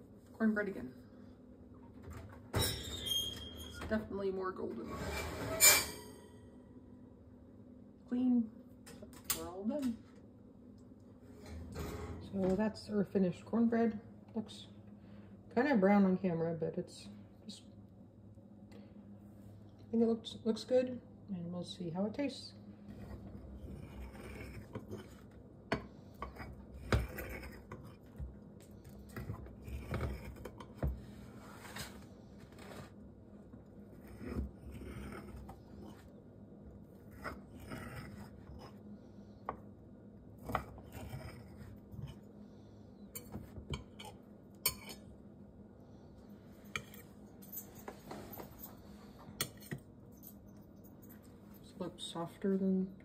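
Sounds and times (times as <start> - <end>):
faint steady hum: 0.0 - 53.0
spatula scraping glass dish: 23.0 - 25.2, 26.2 - 28.0.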